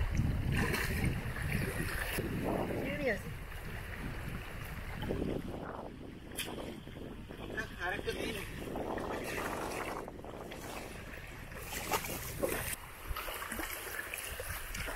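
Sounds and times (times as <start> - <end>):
water splashing: 0.0 - 14.9
wind noise on microphone: 0.0 - 14.9.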